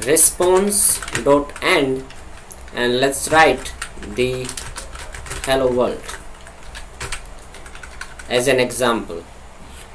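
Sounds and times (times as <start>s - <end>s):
computer keyboard keystrokes: 0.4s - 8.3s.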